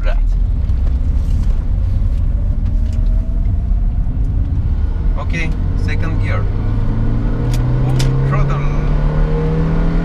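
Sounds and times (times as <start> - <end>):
car engine pulling away: 0.5 - 10.0.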